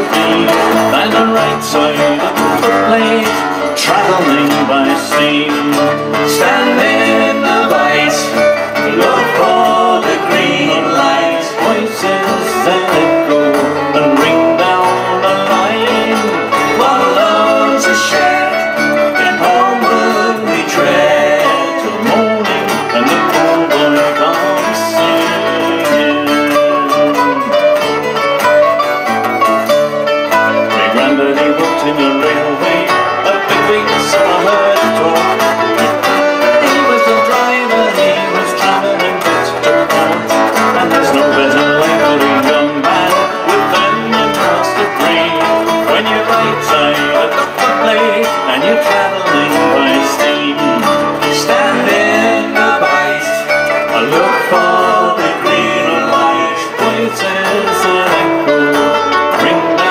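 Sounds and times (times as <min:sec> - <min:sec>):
acoustic bass guitar: 0:00.0 - 0:59.9
acoustic guitars: 0:00.0 - 0:59.9
fiddle: 0:00.0 - 0:59.9
mandolin: 0:00.0 - 0:59.9.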